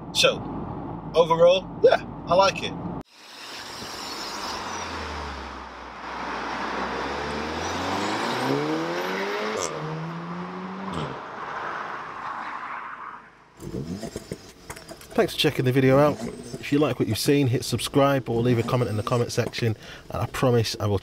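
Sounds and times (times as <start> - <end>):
car engine revving: 3.8 - 19.3.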